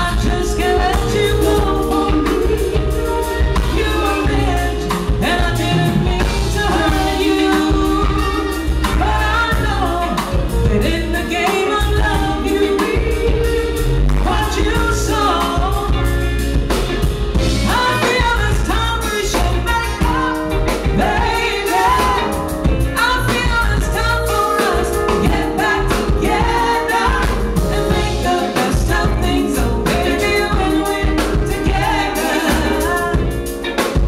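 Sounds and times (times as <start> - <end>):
woman singing into microphone: 0.0 - 16.4, 17.4 - 34.0
band with bass and drums: 0.0 - 34.0.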